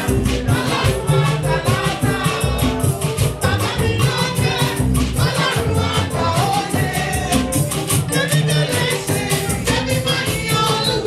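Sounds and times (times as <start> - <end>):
choir singing: 0.0 - 11.0
live band accompaniment: 0.0 - 11.0.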